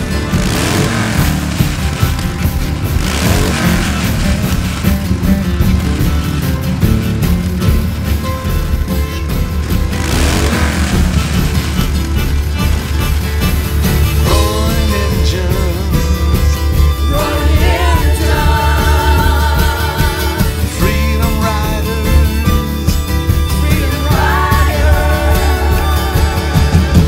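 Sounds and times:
instrumental rock music: 0.0 - 27.0.

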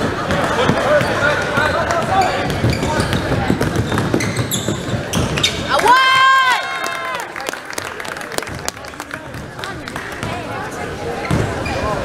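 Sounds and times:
sneakers squeaking: 0.0 - 5.8, 9.3 - 12.0
basketball dribbled on hardwood: 1.0 - 5.4.

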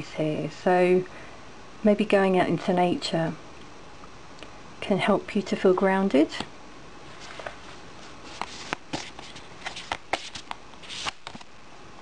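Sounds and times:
cards clicking and tapping: 8.3 - 11.5.

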